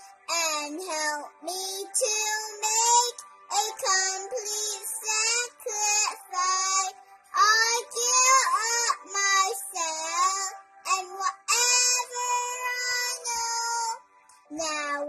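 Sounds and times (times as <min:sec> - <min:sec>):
girl singing a hymn: 0:00.0 - 0:15.0.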